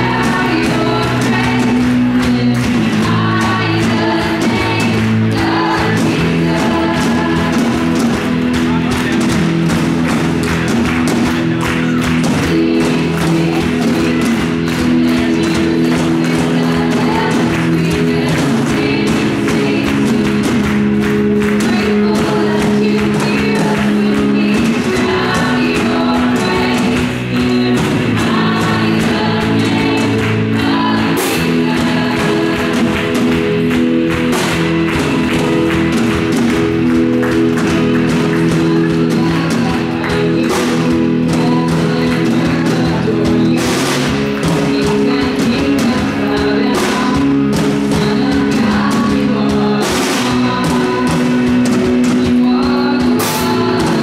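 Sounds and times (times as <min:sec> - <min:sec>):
drum kit with cymbals: 0:00.0 - 0:54.0
electric guitar: 0:00.0 - 0:54.0
sustained band chords: 0:00.0 - 0:54.0.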